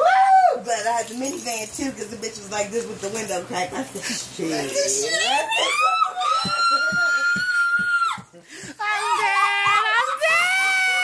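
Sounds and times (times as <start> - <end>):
woman shrieking: 5.0 - 8.2, 8.8 - 11.0.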